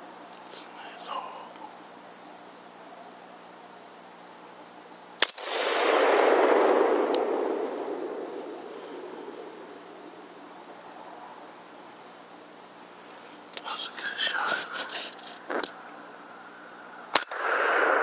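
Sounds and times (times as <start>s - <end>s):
high insect chorus: 0.0s - 18.0s
rifle shot: 5.2s - 10.5s, 17.1s - 18.0s.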